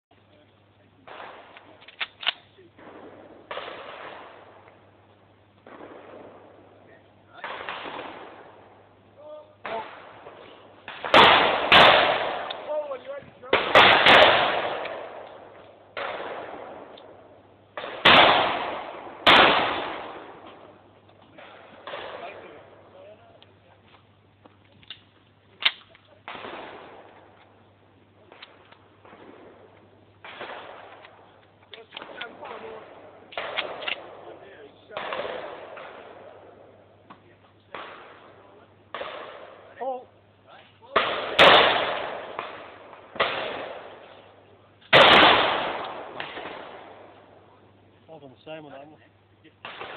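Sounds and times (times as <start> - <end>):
faint bangs: 0.4 - 49.9
shotgun firing: 1.0 - 4.8, 5.6 - 8.8, 9.6 - 22.9, 25.6 - 27.4, 28.2 - 40.0, 40.9 - 44.1, 44.9 - 47.4, 49.6 - 49.9.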